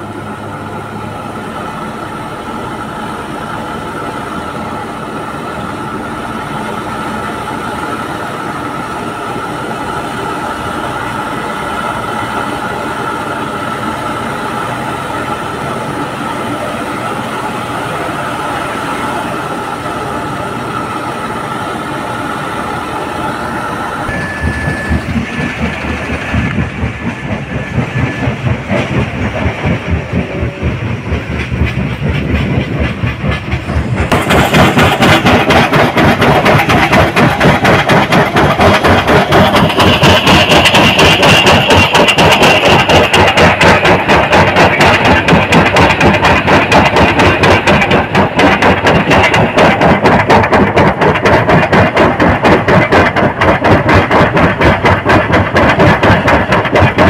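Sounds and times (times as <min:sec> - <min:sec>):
truck engine and road noise: 0:00.0 - 0:57.0
high even whine: 0:17.9 - 0:35.5
fast uneven pulsing rattle: 0:24.3 - 0:57.0.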